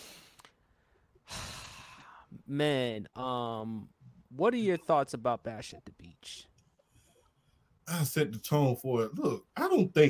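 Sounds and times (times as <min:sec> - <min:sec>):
man breathing: 0:00.0 - 0:02.4.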